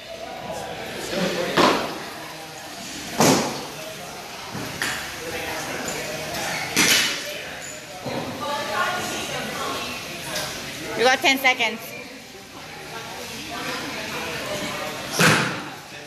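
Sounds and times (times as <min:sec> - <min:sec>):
background chatter: 0:00.0 - 0:16.0
loud sharp thuds in gym: 0:15.1 - 0:15.7.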